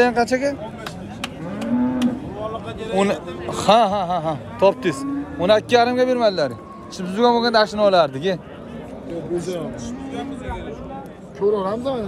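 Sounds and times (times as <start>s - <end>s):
cow mooing: 1.4s - 2.2s, 4.6s - 6.0s.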